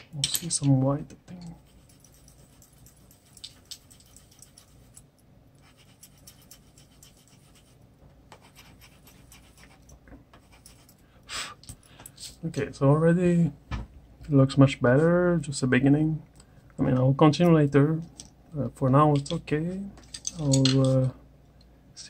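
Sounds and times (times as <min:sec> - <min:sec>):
pencil scratching on paper: 0:01.6 - 0:05.0, 0:05.6 - 0:11.0.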